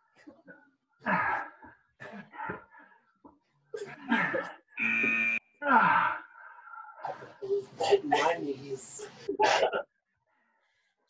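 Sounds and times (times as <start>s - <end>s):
people grunting and groaning: 0.2s - 2.9s, 3.8s - 8.4s.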